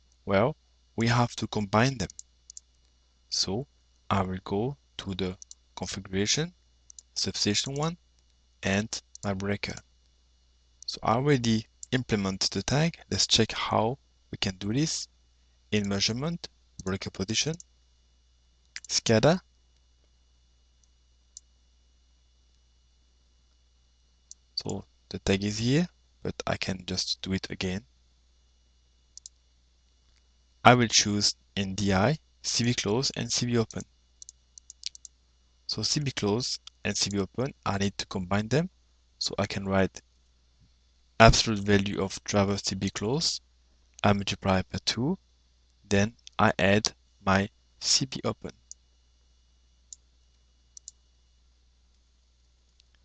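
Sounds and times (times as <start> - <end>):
computer mouse clicks: 2.0 - 2.7, 5.4 - 5.6, 29.2 - 29.4, 33.7 - 35.2, 50.7 - 51.0.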